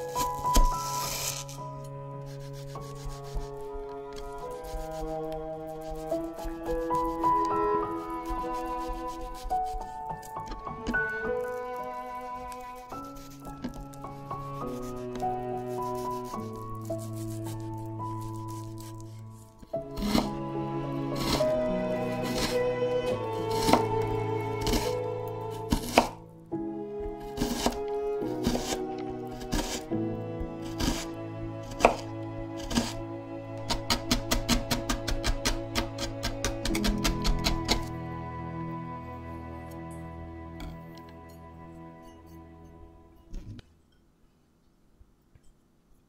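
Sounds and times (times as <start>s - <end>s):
knife cutting on cutting board: 0.0s - 1.6s, 2.2s - 3.6s, 4.2s - 7.2s, 7.9s - 10.6s, 12.5s - 13.9s, 14.5s - 20.4s, 21.0s - 22.7s, 23.4s - 25.0s, 25.6s - 26.2s, 27.2s - 29.9s, 30.6s - 33.0s, 33.6s - 37.9s
background music with held notes: 0.0s - 43.8s
knife chopping on cutting board: 19.9s - 20.4s, 22.2s - 22.5s, 23.5s - 24.0s, 25.7s - 26.2s, 27.4s - 28.8s, 29.4s - 29.8s, 30.7s - 31.1s, 31.7s - 32.9s, 33.7s - 37.9s.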